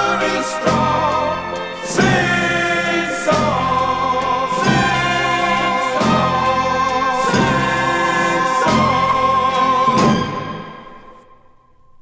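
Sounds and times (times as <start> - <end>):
strong beats: 0.0 - 11.2
choir holding sustained chord: 0.0 - 11.5
instrumental accompaniment: 0.0 - 11.9.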